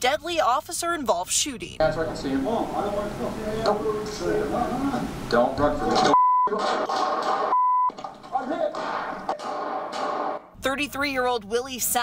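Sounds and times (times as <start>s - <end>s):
voices: 0.0s - 7.5s
censor bleeps: 6.1s - 6.6s, 7.5s - 8.0s.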